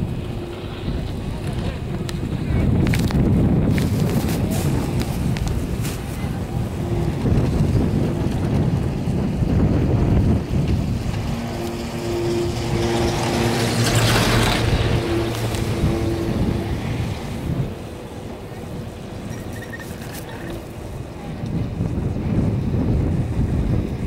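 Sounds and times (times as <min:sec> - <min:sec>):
haul rope hum and rumble: 0:00.0 - 0:24.0
wind buffeting microphone: 0:00.0 - 0:24.0.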